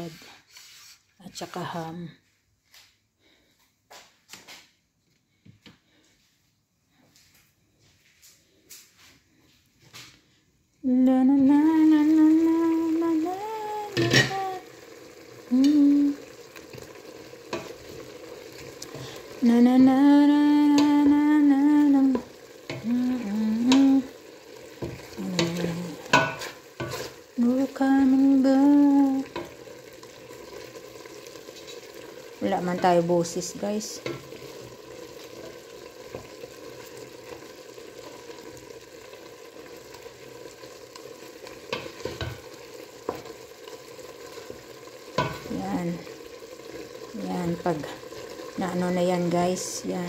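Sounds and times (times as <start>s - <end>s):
person humming a tune: 10.8s - 14.7s, 15.5s - 16.2s, 19.4s - 22.2s, 22.8s - 24.1s
chicken sizzling in a pot: 10.9s - 50.0s
wooden spoon stirring: 16.6s - 19.5s, 22.0s - 27.8s, 29.1s - 38.3s, 41.7s - 43.4s.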